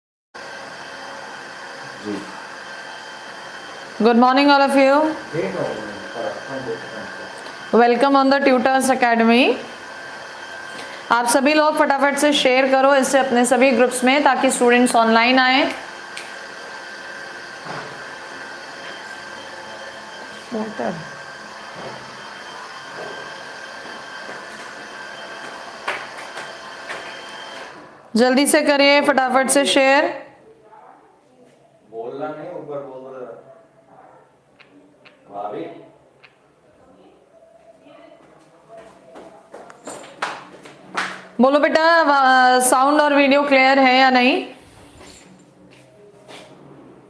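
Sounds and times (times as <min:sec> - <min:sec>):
faint high whine: 0:04.7 - 0:12.0.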